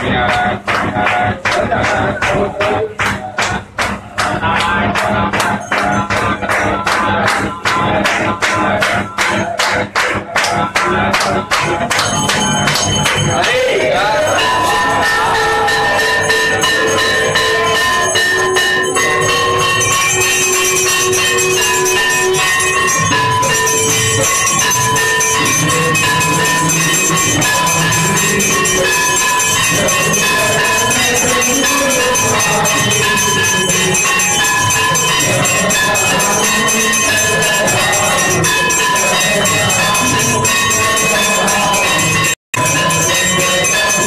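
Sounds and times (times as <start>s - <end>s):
bells rung rapidly: 0.0s - 44.0s.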